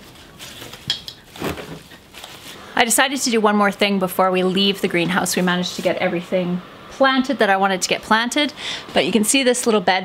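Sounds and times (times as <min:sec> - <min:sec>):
soil scraping in pots: 0:00.0 - 0:02.8.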